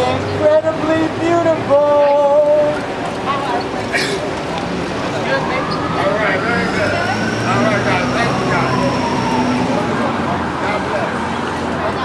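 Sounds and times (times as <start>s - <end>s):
heavy vehicle engine hum: 0.0s - 12.0s
street crowd chatter: 0.0s - 12.0s.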